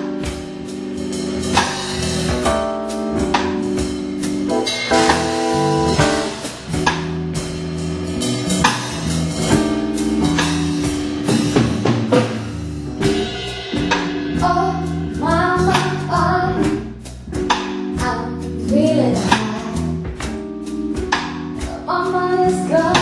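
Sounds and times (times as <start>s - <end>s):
drum kit with cymbals: 0.0s - 23.0s
electric bass guitar: 0.0s - 23.0s
keyboard sustained chords: 0.0s - 23.0s.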